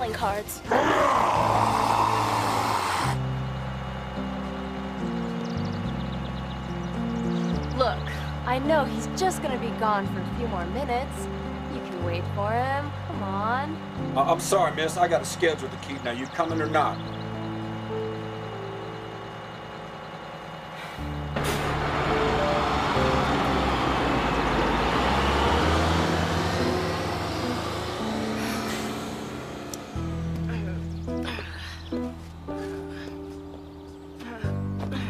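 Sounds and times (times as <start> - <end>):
bus engine pulling away: 0.0 - 35.0
sustained synth music: 0.0 - 35.0.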